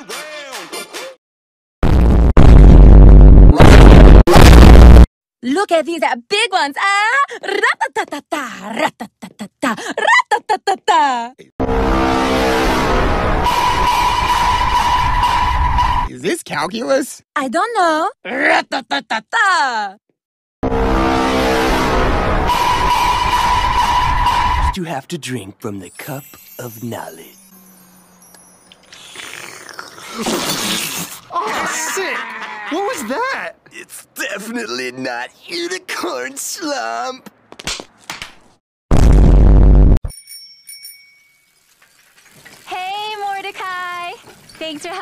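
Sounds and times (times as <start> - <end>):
distorted bass-heavy tones: 1.8 - 5.1
steady high tone: 25.8 - 29.0
bicycle bell ringing: 26.0 - 29.0, 40.1 - 42.1.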